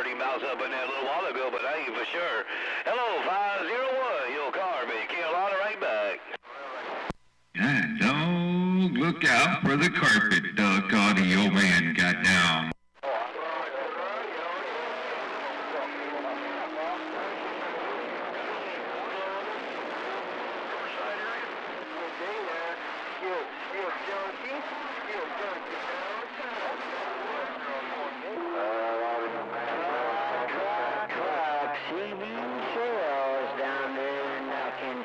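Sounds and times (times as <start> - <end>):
garbled radio voices: 0.0 - 7.0, 7.6 - 35.0
radio carrier tones: 4.6 - 32.0.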